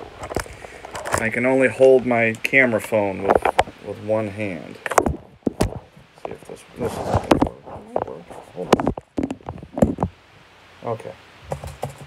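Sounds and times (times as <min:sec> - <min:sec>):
clicks and knocks of handling: 0:02.3 - 0:03.8.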